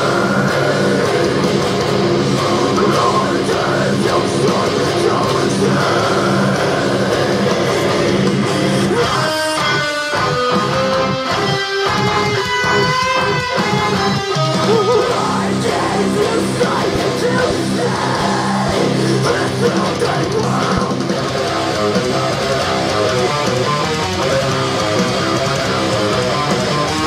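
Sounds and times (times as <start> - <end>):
distorted electric guitar riff: 0.0 - 27.0.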